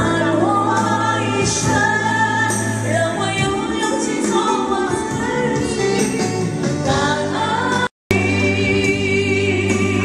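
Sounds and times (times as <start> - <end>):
amplified backing track: 0.0 - 10.0.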